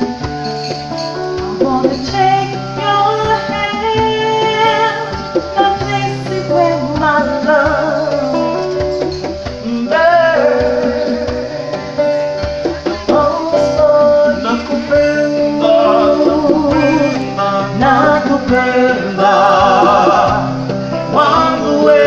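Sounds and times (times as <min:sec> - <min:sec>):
hand drums: 0:00.0 - 0:22.0
strummed acoustic guitar: 0:00.0 - 0:22.0
woman singing: 0:01.5 - 0:12.2, 0:12.9 - 0:22.0.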